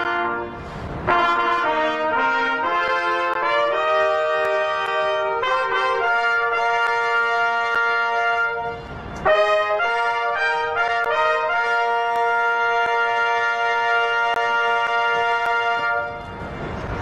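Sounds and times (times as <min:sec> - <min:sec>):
herald trumpets playing a fanfare: 0:00.0 - 0:16.8.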